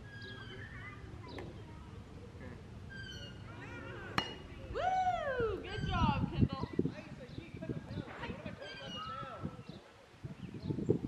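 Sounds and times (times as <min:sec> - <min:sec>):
faint distant voices: 0:00.0 - 0:11.0
bat striking softball: 0:04.1 - 0:04.6.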